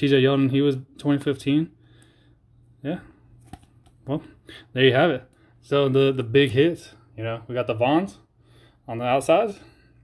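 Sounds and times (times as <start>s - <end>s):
trading card being handled: 3.3s - 4.2s.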